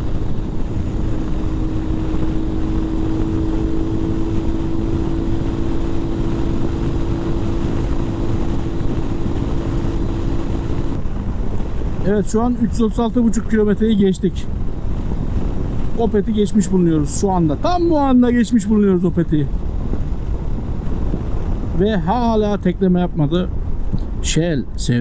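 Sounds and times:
motorcycle engine cruising: 0:00.0 - 0:12.0
wind rushing on microphone: 0:00.0 - 0:25.0.

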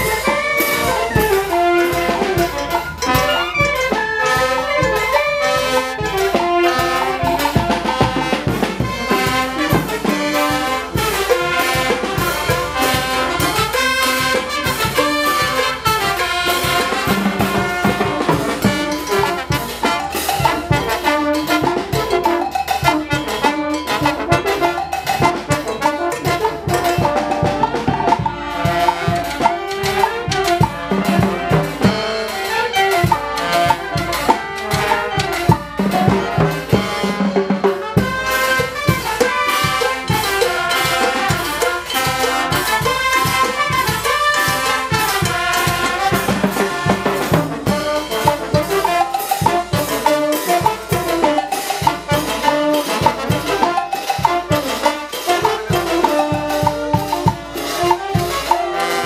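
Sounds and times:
saxophones: 0:00.0 - 0:59.0
sousaphones: 0:00.0 - 0:59.0
trumpets and trombones melody: 0:00.0 - 0:59.0.

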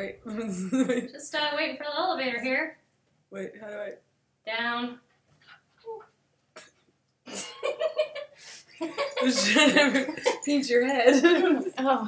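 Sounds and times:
woman laughing: 0:07.3 - 0:12.0.

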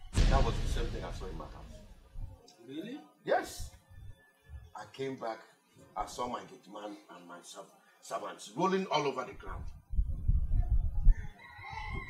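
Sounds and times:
low rumble: 0:00.0 - 0:02.4
rooster crowing: 0:11.2 - 0:12.0.

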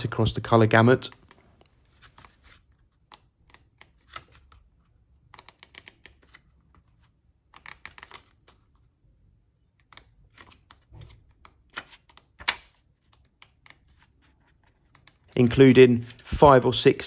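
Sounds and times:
paper pages flicking: 0:07.5 - 0:08.6, 0:09.8 - 0:16.8.

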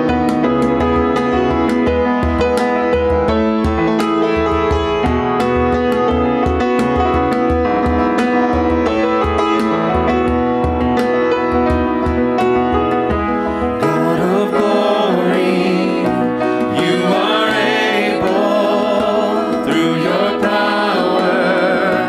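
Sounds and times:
grand piano playing: 0:00.0 - 0:22.0.

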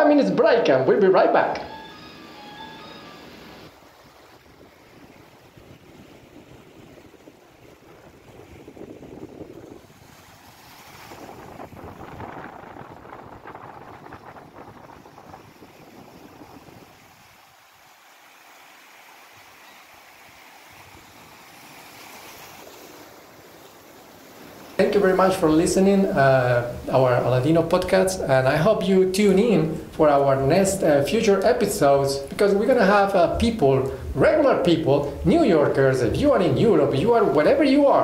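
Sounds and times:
wind on microphone: 0:03.7 - 0:17.4
waves washing over rocks: 0:03.7 - 0:38.0.

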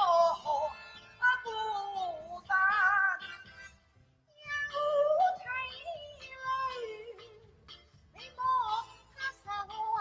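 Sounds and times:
high gliding opera-style singing: 0:00.0 - 0:03.5, 0:04.3 - 0:10.0.

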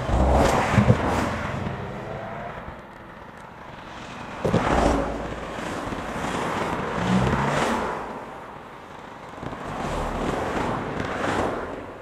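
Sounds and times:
cars driving past: 0:00.0 - 0:12.0.

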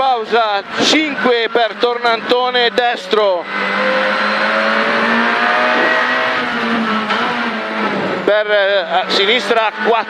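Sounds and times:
rally car engine at high revs: 0:00.0 - 0:10.0
road noise: 0:00.0 - 0:10.0.

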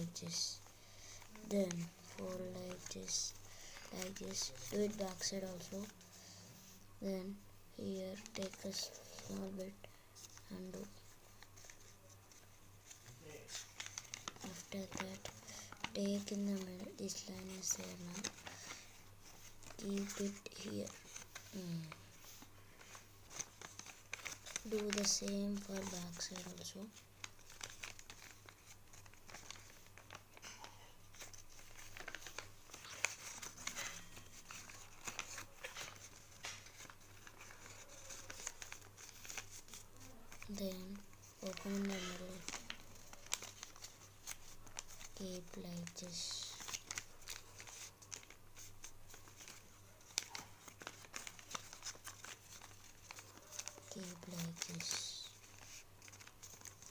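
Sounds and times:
paper rustling and creasing: 0:00.0 - 0:56.9.

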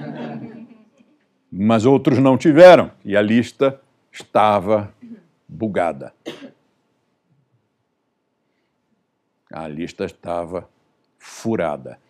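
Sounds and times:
person coughing: 0:06.2 - 0:06.6.

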